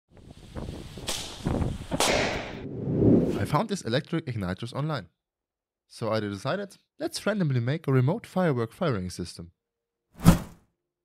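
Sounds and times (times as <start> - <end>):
wind rumbling on microphone: 0.1 - 3.4
firework hissing whoosh: 0.2 - 3.3.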